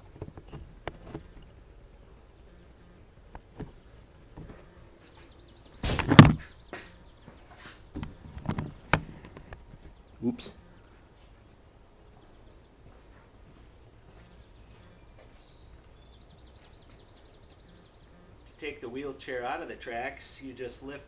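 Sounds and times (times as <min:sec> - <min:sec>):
knocks and clunks: 0:05.8 - 0:07.0.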